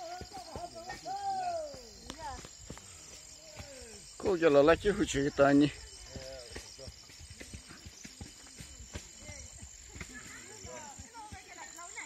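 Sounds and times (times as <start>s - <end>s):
footsteps on dirt path: 0.0s - 12.0s
insect drone: 0.0s - 12.0s.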